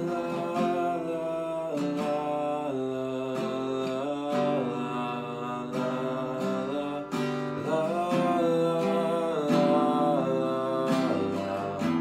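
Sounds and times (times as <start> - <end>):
man singing long notes: 0.0 - 12.0
strummed acoustic guitar: 0.0 - 12.0.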